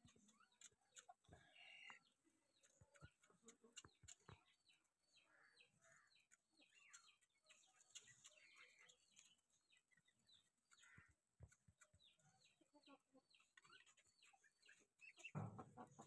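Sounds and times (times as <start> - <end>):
bird chirping: 0.0 - 16.0
bird clucks: 12.4 - 16.0.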